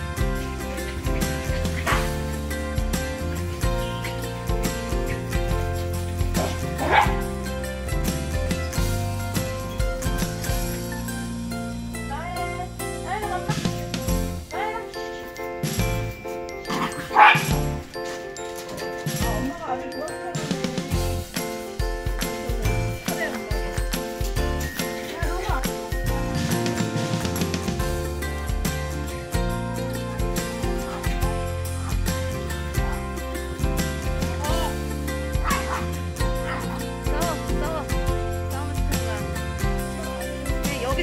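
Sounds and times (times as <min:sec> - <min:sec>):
background music with steady beat: 0:00.0 - 0:41.0
small dog barking: 0:06.4 - 0:07.2, 0:16.7 - 0:17.5, 0:35.4 - 0:36.8.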